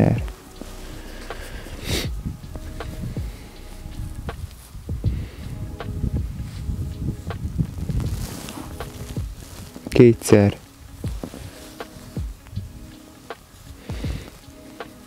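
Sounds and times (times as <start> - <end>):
clothing rustling on microphone: 0.0 - 15.0.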